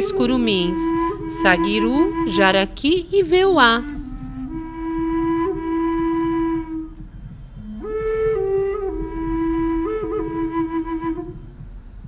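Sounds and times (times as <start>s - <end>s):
flute melody: 0.0s - 12.0s.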